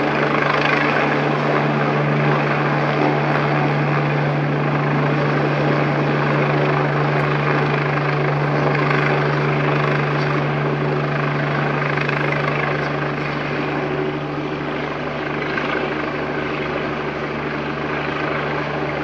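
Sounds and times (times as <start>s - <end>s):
helicopter rotor drone: 0.0s - 19.0s.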